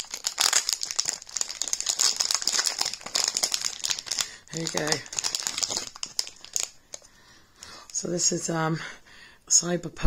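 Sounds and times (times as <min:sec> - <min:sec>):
packaging crinkling: 0:00.0 - 0:08.2.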